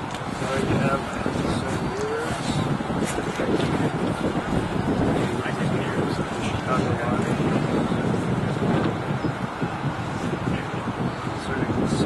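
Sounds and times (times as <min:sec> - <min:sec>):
steady outdoor rumble: 0:00.0 - 0:12.0.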